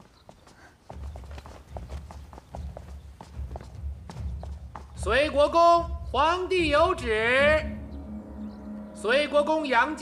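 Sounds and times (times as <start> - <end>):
hurried footsteps: 0.0 - 7.8.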